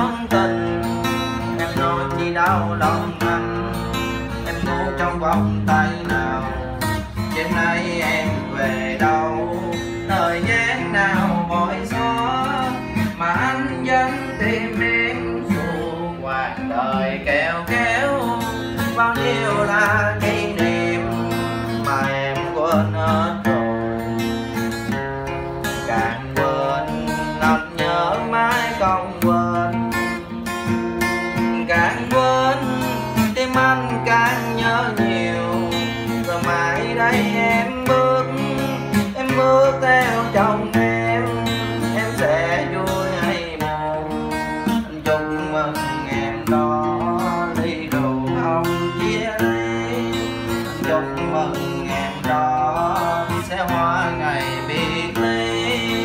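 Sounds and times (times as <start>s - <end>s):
acoustic guitar: 0.0s - 56.0s.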